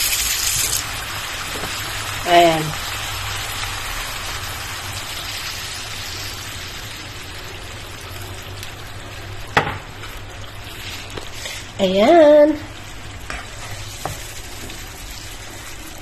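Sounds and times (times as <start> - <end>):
water hissing in hot frying pan: 0.0 - 12.0, 12.7 - 16.0.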